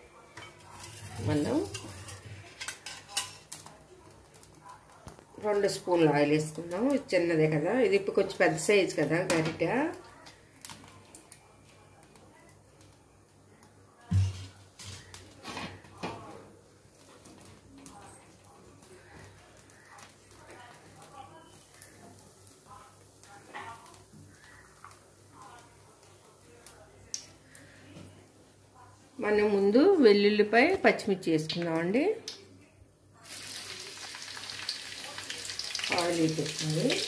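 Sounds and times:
faint distant voices: 0:00.0 - 0:31.3
woman speaking: 0:01.1 - 0:01.8, 0:05.4 - 0:10.1, 0:28.8 - 0:32.3, 0:35.9 - 0:37.0.

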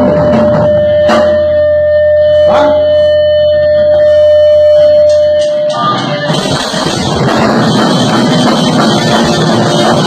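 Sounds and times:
electric guitar ringing tone: 0:00.0 - 0:10.0
low amplifier hum: 0:00.0 - 0:10.0.

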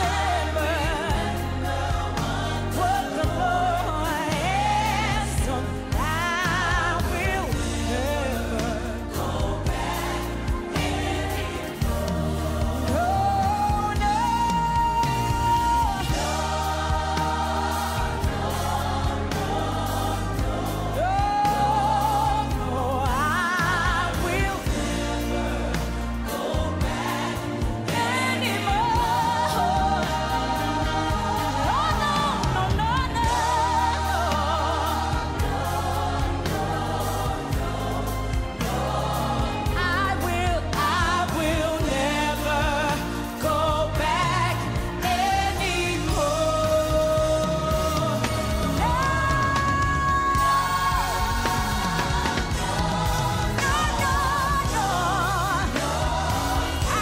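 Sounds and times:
drum kit and band: 0:00.0 - 0:57.0
singers with vibrato: 0:00.0 - 0:57.0.

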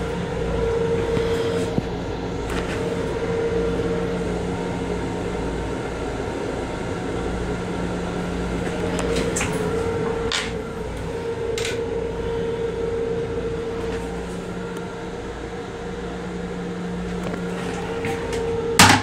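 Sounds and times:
train running rumble and hum: 0:00.0 - 0:19.0.

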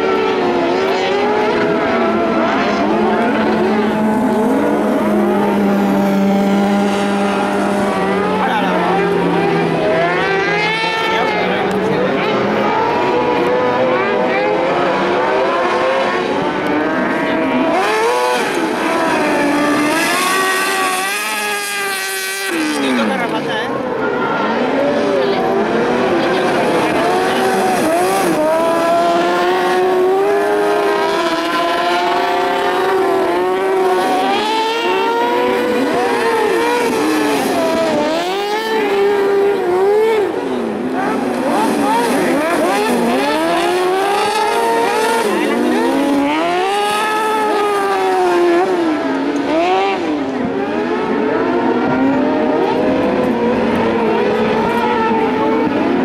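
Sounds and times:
buggy engines revving high: 0:00.0 - 0:56.0.

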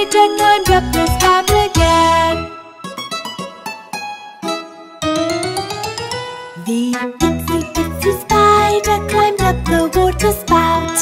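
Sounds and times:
plucked string instrument: 0:00.5 - 0:10.1.

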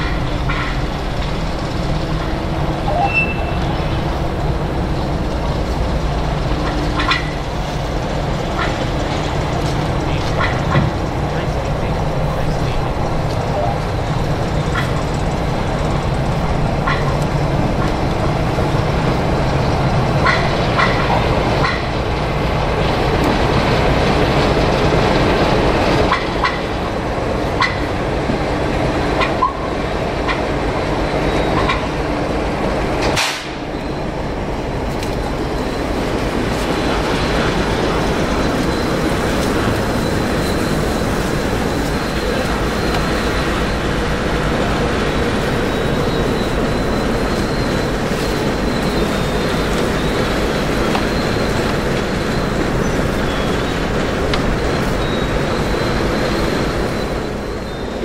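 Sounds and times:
wheels squeaking and clicking: 0:00.0 - 0:28.0, 0:29.2 - 0:32.1, 0:33.0 - 0:58.0
diesel locomotive engine running: 0:00.0 - 0:58.0.

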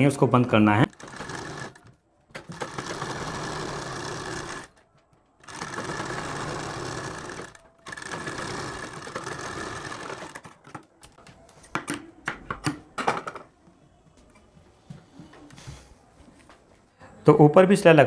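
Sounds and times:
sewing machine stitching: 0:00.8 - 0:04.8, 0:05.4 - 0:10.6.

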